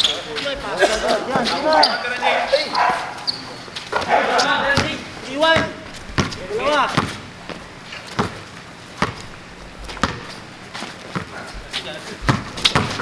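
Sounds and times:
players shouting: 0:00.6 - 0:07.1
basketball bouncing on hard court: 0:04.7 - 0:08.4, 0:09.0 - 0:09.3, 0:09.9 - 0:10.3, 0:11.1 - 0:11.3, 0:12.2 - 0:13.0.

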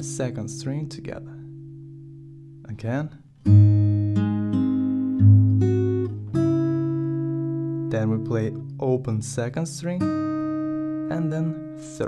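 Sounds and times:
acoustic guitar fingerstyle plucking: 0:00.0 - 0:12.0.

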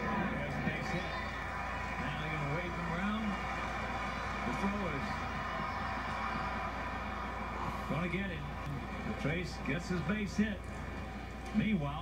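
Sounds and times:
faint tv voices: 0:00.0 - 0:12.0
steady background noise: 0:00.0 - 0:12.0.

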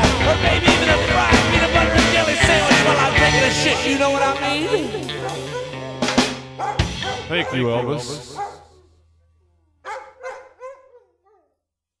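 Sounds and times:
dog barking and yelping: 0:04.4 - 0:09.0, 0:09.8 - 0:11.6.

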